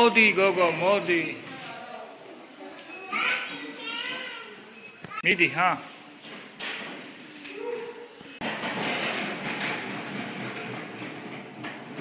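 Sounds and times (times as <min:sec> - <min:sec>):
shopping trolley wheels rattling: 0:08.4 - 0:12.0.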